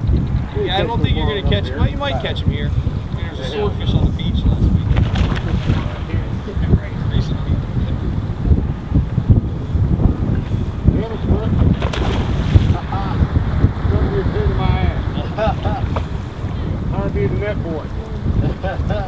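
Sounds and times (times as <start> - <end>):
faint voices talking: 0.0 - 9.3, 10.2 - 18.9
wind buffeting microphone: 0.0 - 19.0.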